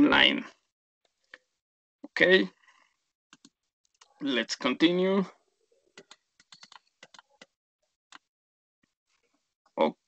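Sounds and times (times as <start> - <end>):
computer mouse clicks: 3.3 - 4.2, 6.0 - 8.3.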